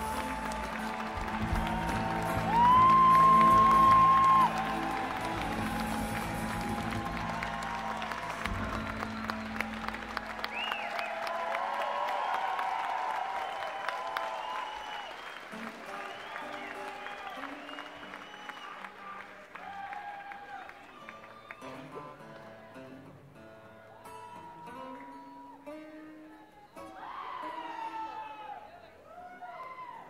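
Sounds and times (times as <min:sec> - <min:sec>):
crowd applause and cheers: 0:00.0 - 0:30.0.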